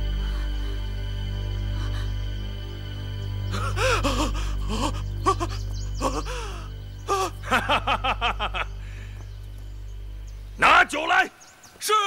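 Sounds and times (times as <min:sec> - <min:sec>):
low droning background music: 0:00.0 - 0:11.8
person gasping and crying out: 0:03.6 - 0:07.4.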